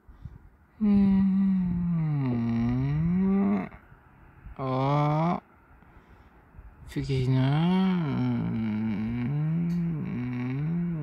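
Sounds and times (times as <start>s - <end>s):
man humming: 0.8s - 3.8s, 4.6s - 5.4s, 7.2s - 11.0s.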